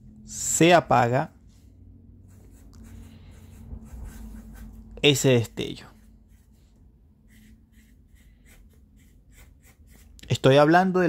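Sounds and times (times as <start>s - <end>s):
marker writing on paper: 2.3s - 4.9s, 5.6s - 6.6s, 7.3s - 10.2s.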